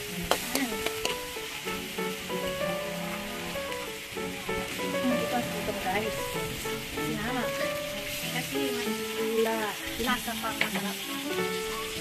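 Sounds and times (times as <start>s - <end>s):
food sizzling in a hot wok: 0.0s - 12.0s.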